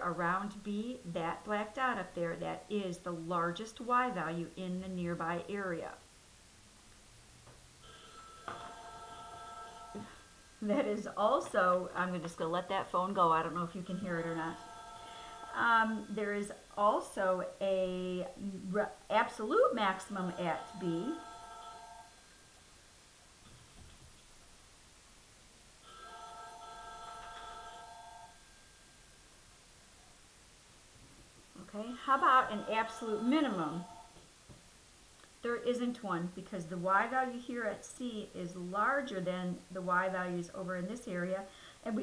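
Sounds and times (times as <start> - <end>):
telephone ringing: 7.8 - 10.2, 14.1 - 16.2, 19.8 - 22.2, 25.8 - 29.0, 32.1 - 34.2.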